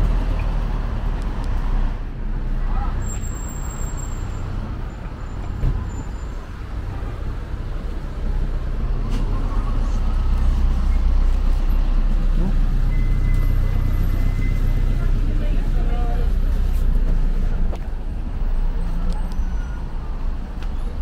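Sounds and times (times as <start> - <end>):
street traffic engines rumbling: 0.0 - 21.0.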